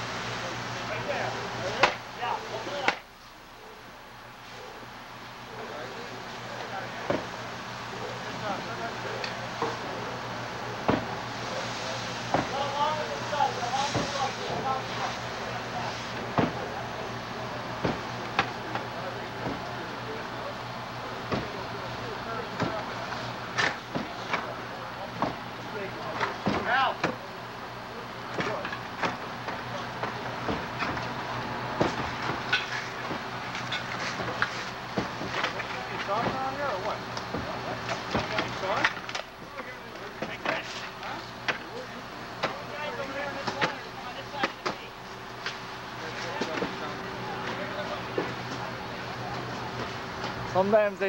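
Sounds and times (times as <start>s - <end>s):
steady engine hum: 0.0s - 51.0s.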